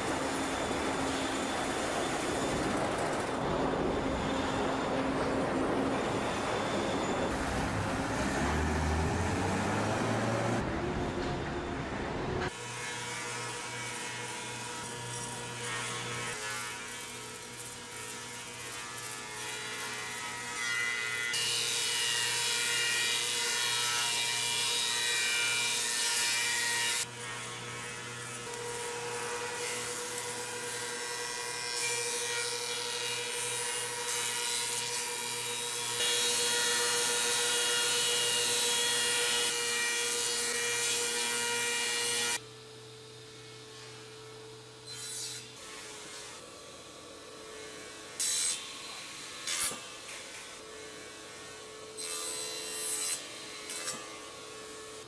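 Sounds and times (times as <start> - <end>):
factory machinery hum: 0.0 - 19.1.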